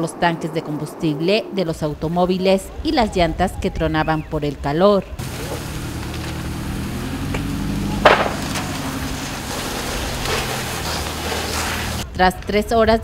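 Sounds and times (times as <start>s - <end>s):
fire crackling and popping: 5.1s - 12.0s
loud sharp pop: 7.3s - 8.8s.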